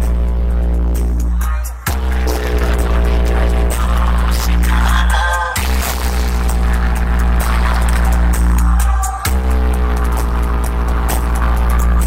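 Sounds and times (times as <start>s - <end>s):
loud dance music with heavy bass: 0.0s - 12.0s.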